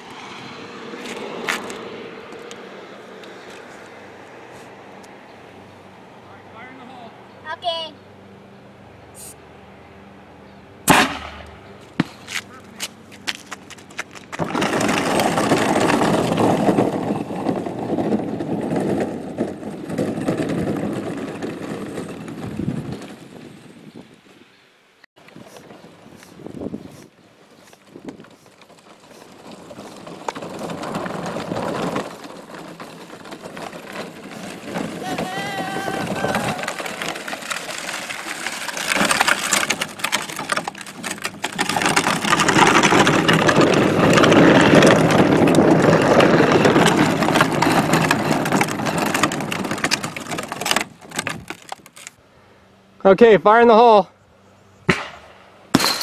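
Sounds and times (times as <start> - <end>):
plastic wheels rolling on gravel: 11.3 - 24.0, 25.2 - 52.2.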